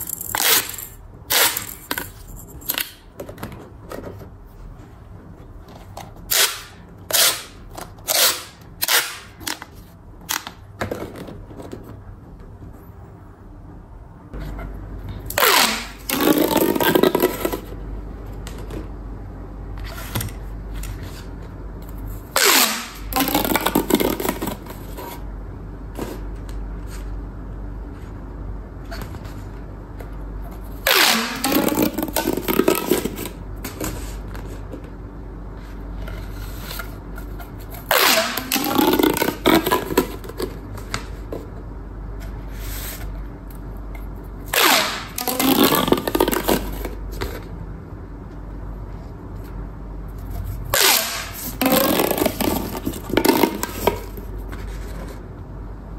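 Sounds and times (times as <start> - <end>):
plastic pop tube zipping pops: 44.5 - 46.8.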